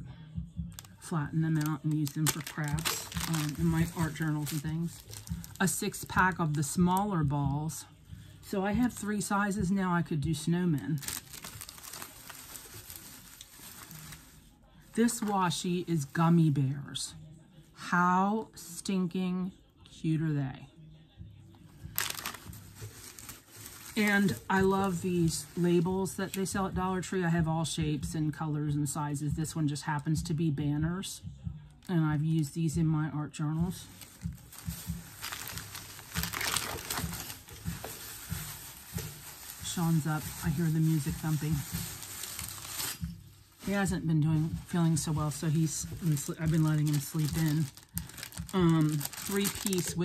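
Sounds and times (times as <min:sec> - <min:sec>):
faint music bass thumping: 0:00.0 - 0:17.0, 0:21.0 - 0:50.0
plastic bag crinkling: 0:00.7 - 0:07.0, 0:10.4 - 0:16.3, 0:21.8 - 0:26.4, 0:33.8 - 0:50.0
packaging rustling: 0:00.8 - 0:06.8, 0:10.8 - 0:16.2, 0:21.9 - 0:25.6, 0:33.9 - 0:50.0.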